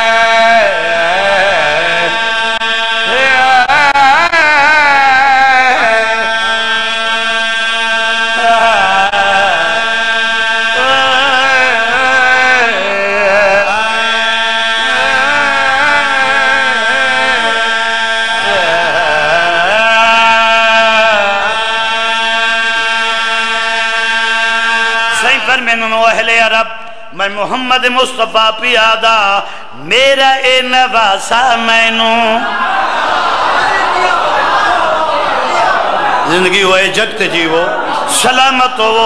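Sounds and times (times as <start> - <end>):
man singing a long note: 0.0 - 32.4
man chanting through microphone: 0.0 - 32.5, 36.2 - 39.0.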